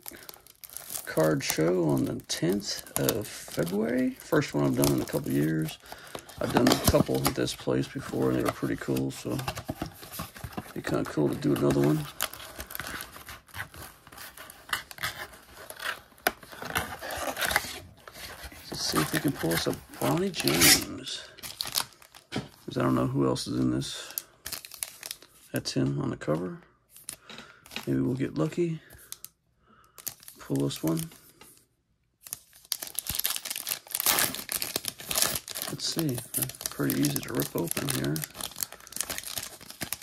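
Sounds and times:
foil wrapper crinkling: 0.0s - 7.3s, 32.2s - 40.0s.

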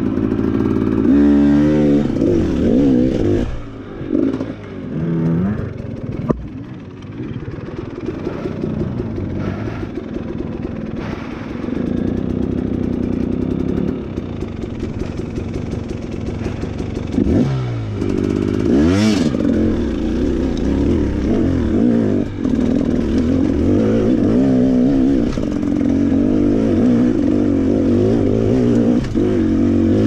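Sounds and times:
dirt bike engine revving: 0.0s - 30.0s
clattering over rough ground: 14.4s - 17.5s, 18.2s - 30.0s.

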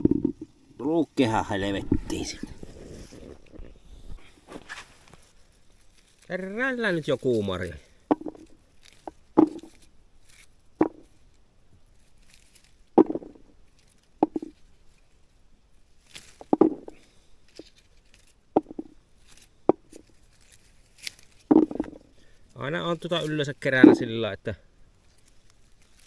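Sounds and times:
leaves rustling: 0.0s - 26.0s
berries dropping into plastic bucket: 8.0s - 9.9s, 10.8s - 11.1s, 12.9s - 14.6s, 16.1s - 17.8s, 18.6s - 20.2s, 21.0s - 22.2s.

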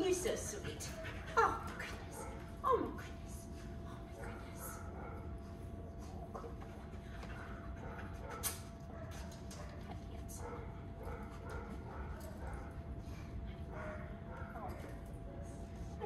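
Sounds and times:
steady thin hum: 0.0s - 16.0s.

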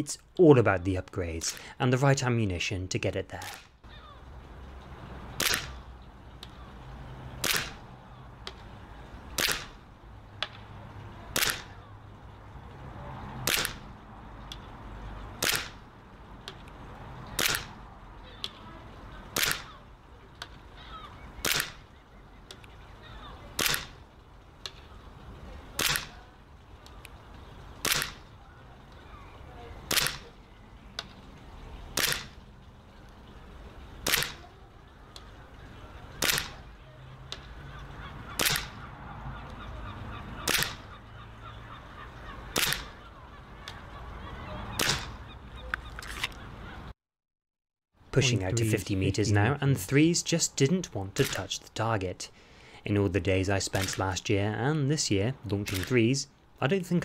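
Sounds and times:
airsoft pistol shots: 5.4s - 5.8s, 7.4s - 7.8s, 9.4s - 9.8s, 11.4s - 11.7s, 13.4s - 13.8s, 15.4s - 15.8s, 17.4s - 17.7s, 19.4s - 19.7s, 21.4s - 21.8s, 23.6s - 24.0s, 25.8s - 26.2s, 27.8s - 28.2s, 29.9s - 30.3s, 32.0s - 32.4s, 34.0s - 34.4s, 36.2s - 36.6s, 38.4s - 38.8s, 40.5s - 40.8s, 42.6s - 42.9s, 44.8s - 45.2s, 51.2s - 51.4s.

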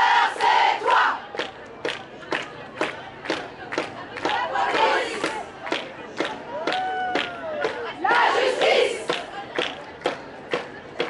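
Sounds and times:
women chanting in unison: 0.0s - 1.2s, 4.2s - 5.4s.

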